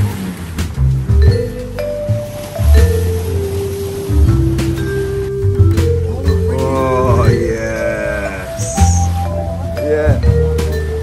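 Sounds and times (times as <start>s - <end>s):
background music with steady bass: 0.0s - 11.0s.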